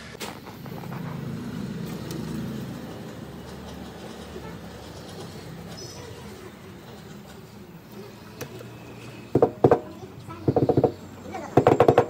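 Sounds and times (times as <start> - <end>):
low vehicle rumble: 0.0 - 11.8.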